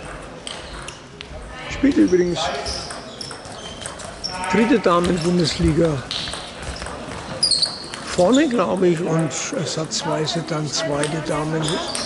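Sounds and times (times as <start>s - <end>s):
shoe squeak on floor: 1.9s - 8.6s, 11.5s - 12.0s.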